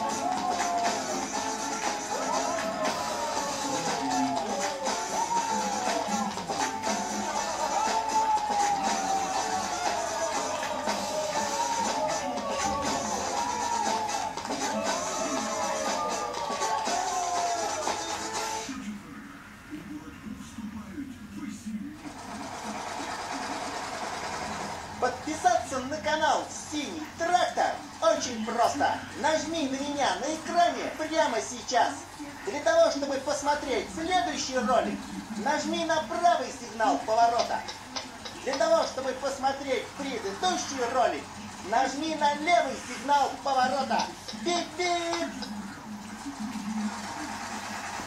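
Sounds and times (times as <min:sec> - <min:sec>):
faint speech: 0:00.0 - 0:23.9.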